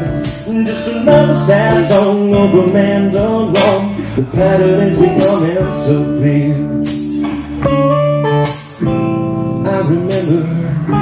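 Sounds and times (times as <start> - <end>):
blues-rock band playing: 0.0 - 11.0
bright percussive hit: 0.2 - 0.6, 6.9 - 7.4, 8.5 - 8.9.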